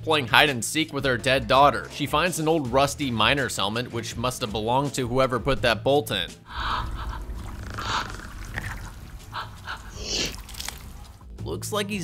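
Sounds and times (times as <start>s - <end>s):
woman gasping for breath: 6.5s - 10.9s.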